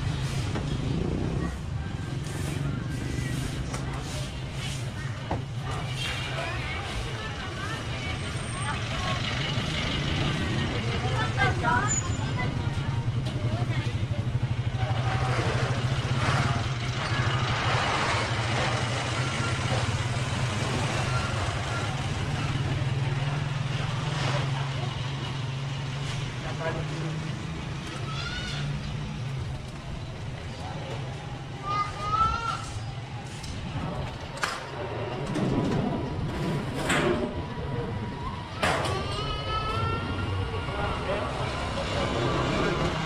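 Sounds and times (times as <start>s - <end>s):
passers-by talking: 0.0s - 43.0s.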